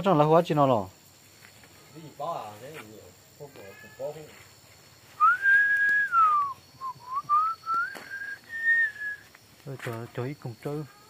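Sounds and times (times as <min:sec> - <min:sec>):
person whistling: 0:05.2 - 0:09.3.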